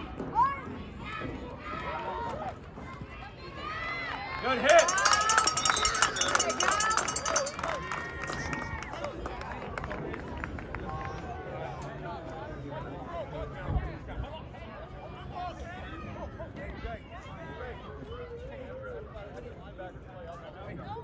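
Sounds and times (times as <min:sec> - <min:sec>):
crowd yelling and cheering: 0:03.4 - 0:09.2.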